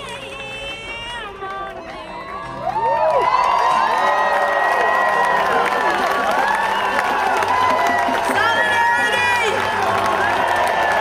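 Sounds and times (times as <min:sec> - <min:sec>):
crowd cheering and shouting: 0:01.5 - 0:11.0.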